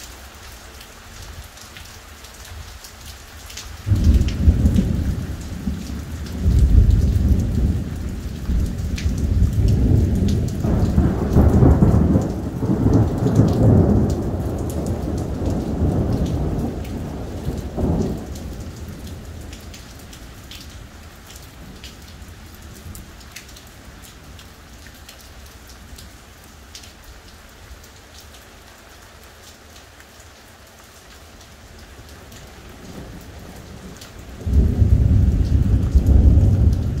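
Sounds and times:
steady rain: 0.0 - 37.0
thunder rumbling: 3.9 - 19.8, 32.8 - 37.0.

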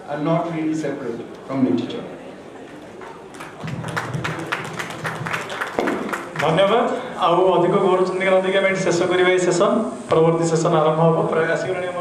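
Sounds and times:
audience applauding: 3.0 - 6.9.

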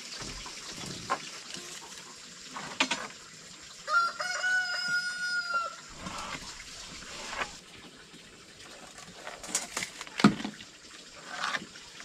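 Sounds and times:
rooster crowing: 3.9 - 6.3.

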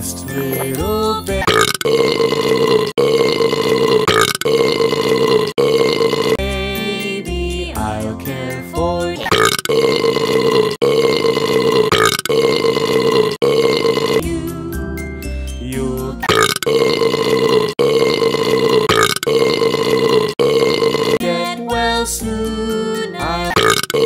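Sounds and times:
children's song backing music: 0.0 - 1.4, 6.4 - 9.3, 14.2 - 16.2, 21.2 - 23.6
long drawn-out burps: 1.4 - 6.5, 9.2 - 14.4, 16.2 - 21.3, 23.5 - 24.0.

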